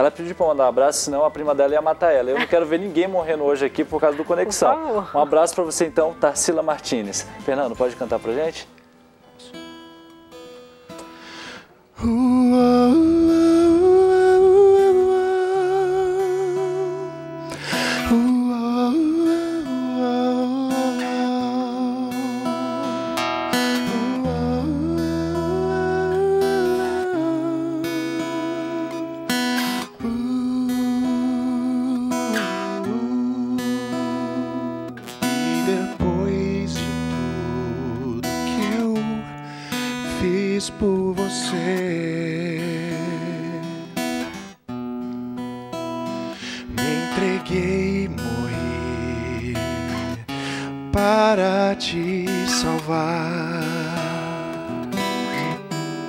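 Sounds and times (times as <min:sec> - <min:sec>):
man singing: 0:00.0 - 0:08.7, 0:12.0 - 0:44.4, 0:46.1 - 0:56.0
acoustic guitar notes picked: 0:00.0 - 0:56.0.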